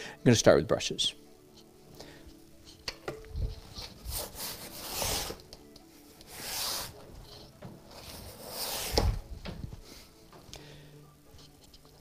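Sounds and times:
paintbrush rubbing on canvas: 3.5s - 5.4s, 6.2s - 9.2s.

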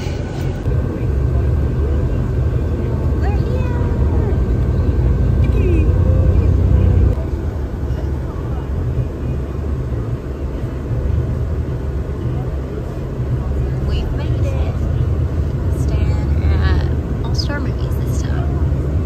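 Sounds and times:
bus engine and road rumble: 0.0s - 19.0s
faint passenger chatter: 0.0s - 19.0s.

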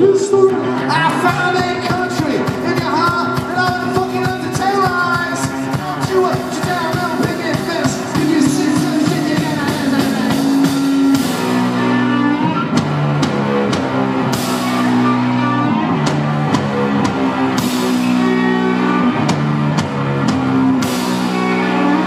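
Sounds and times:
held bass notes: 0.0s - 22.0s
rock band playing: 0.0s - 22.0s.

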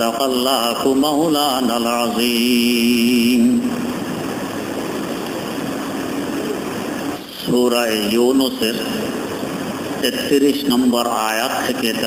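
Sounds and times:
constant hum and hiss: 0.0s - 12.0s.

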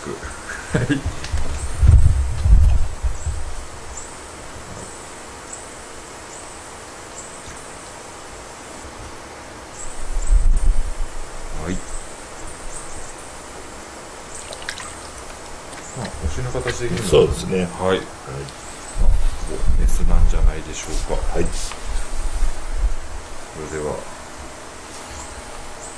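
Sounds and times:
steady background hiss: 0.0s - 25.9s
water sloshing and splashing: 14.4s - 17.7s.

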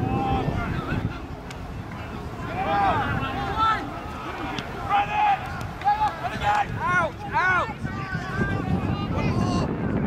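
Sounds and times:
distant players shouting: 0.0s - 9.6s.

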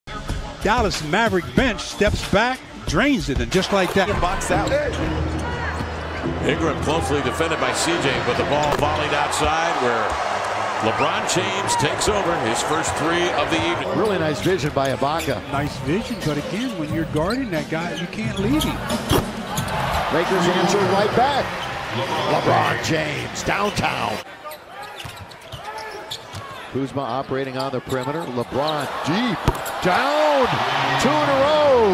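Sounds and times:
arena crowd hum: 0.1s - 31.9s.

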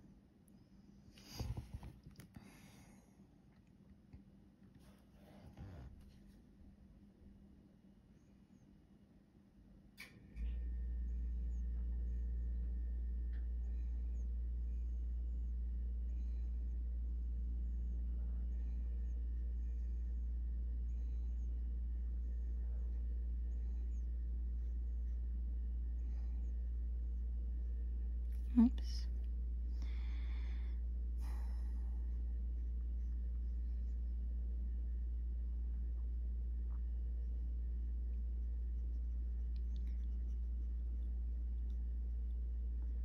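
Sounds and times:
electrical motor hum: 0.0s - 43.0s.

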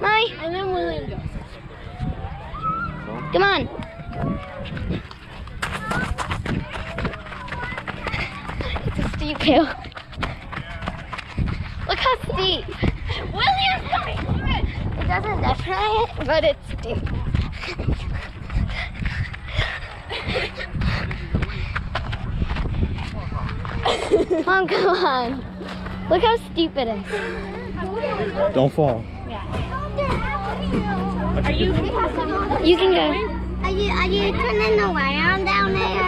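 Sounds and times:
faint voices: 0.0s - 36.0s
wind rumbling on microphone: 0.8s - 24.4s
footsteps running downhill: 3.7s - 23.9s.

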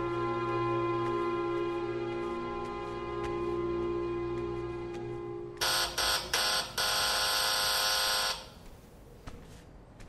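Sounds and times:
electric doorbell buzzer: 5.6s - 8.5s.

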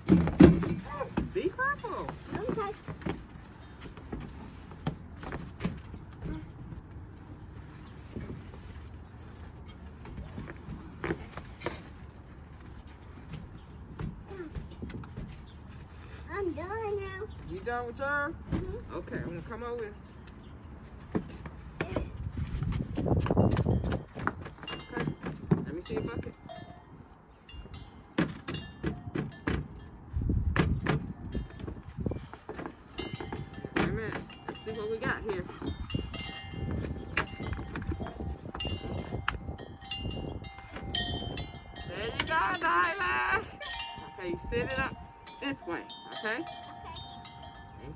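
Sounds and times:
high ringing tones: 33.0s - 47.9s.

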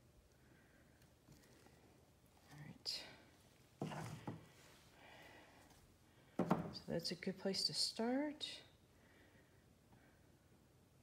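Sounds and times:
woman speaking: 6.8s - 8.7s.

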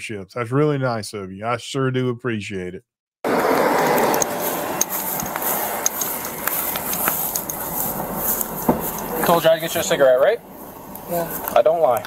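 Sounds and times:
rustling handling noise: 3.8s - 11.6s.

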